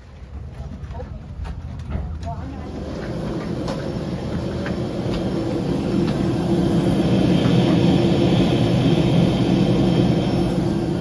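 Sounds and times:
voices: 0.5s - 11.0s
low steady rumble: 1.1s - 11.0s.

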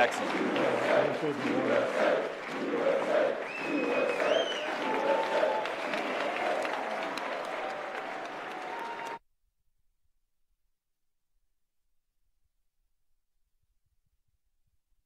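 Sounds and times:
large audience applauding: 0.0s - 9.2s
voices in crowd: 0.0s - 9.2s
shrill whistle rising in pitch: 3.4s - 5.1s.

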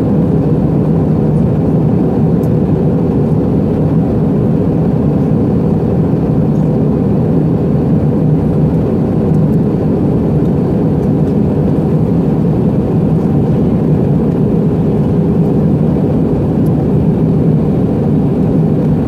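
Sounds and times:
jet engine and airflow rumble: 0.0s - 19.0s.

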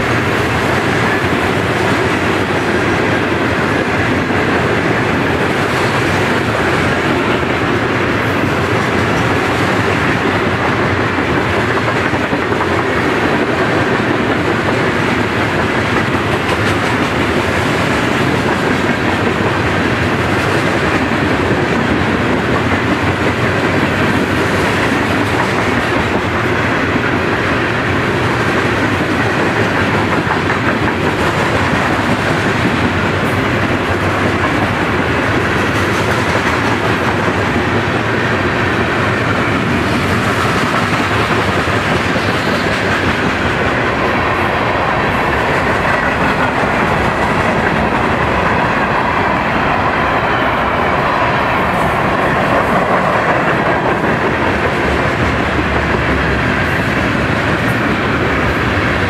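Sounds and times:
freight train rumbling past: 0.0s - 59.0s
wheels clacking over rail joints: 0.0s - 59.0s.

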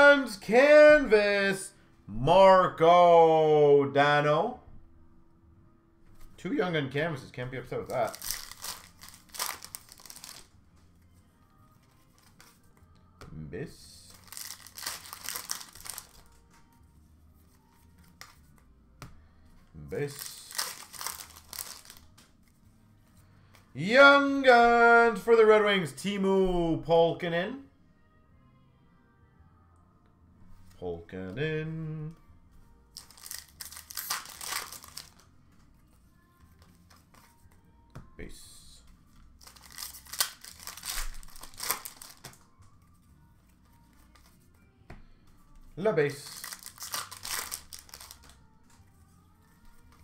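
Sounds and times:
card pack wrapper crinkling: 7.9s - 10.5s, 14.1s - 16.4s, 20.0s - 22.1s, 33.0s - 35.2s, 39.4s - 42.4s, 46.2s - 48.4s.

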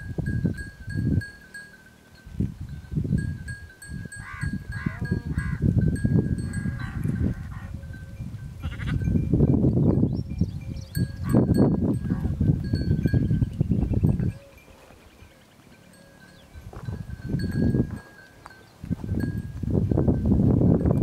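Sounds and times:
sheep bleating: 8.6s - 9.0s.

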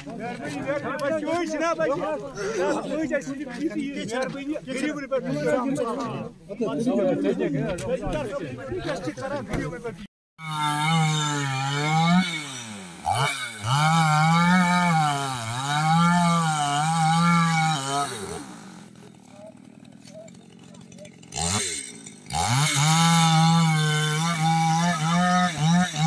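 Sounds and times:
chainsaw cutting tree: 10.4s - 26.0s.

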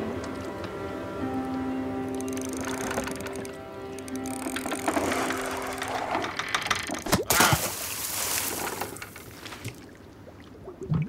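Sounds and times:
soft music with long held notes: 0.0s - 6.6s
fishing reel ratchet clicking: 2.1s - 6.8s.

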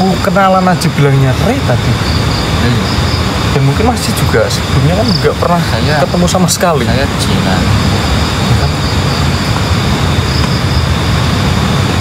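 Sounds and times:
loud rushing noise with rumble: 0.0s - 12.0s.

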